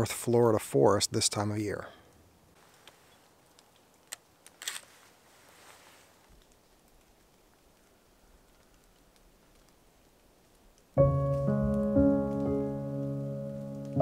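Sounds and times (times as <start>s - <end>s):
clatter of camera clicks: 4.1s - 4.9s
camera shutter click: 4.6s - 4.9s.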